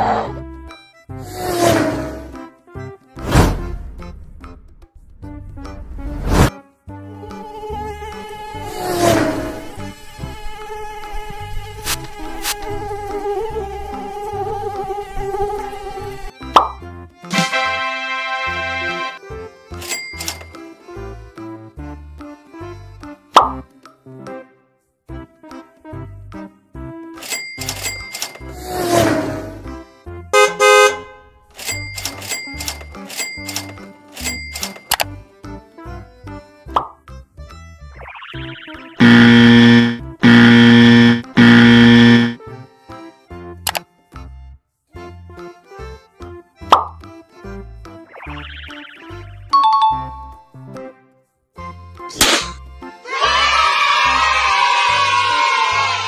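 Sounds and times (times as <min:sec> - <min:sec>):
background music: 0:00.0 - 0:56.0
mosquito buzzing whine: 0:07.4 - 0:16.2, 0:39.0 - 0:42.4
pop with falling pitch: 0:16.6 - 0:16.8, 0:38.0 - 0:40.0, 0:48.1 - 0:50.3
clicks: 0:19.8 - 0:20.6, 0:31.6 - 0:35.1
loud bright pitched tone: 0:38.3 - 0:42.4.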